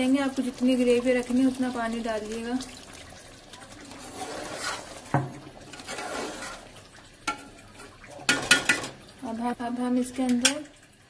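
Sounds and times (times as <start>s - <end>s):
spoon stirring liquid in a pot: 3.5s - 9.0s.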